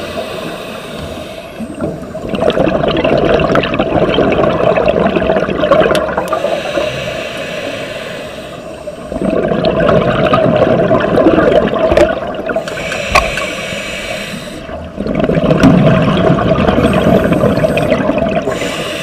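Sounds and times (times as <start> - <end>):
regulator inhale hiss: 0.0 - 1.8, 6.3 - 9.1, 12.6 - 14.8, 16.9 - 19.0
exhaled bubbles rushing: 1.7 - 6.8, 9.0 - 12.6, 14.7 - 18.8.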